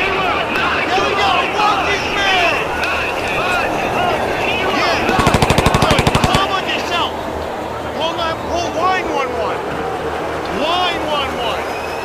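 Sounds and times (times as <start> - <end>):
automatic gunfire: 5.1 - 6.6.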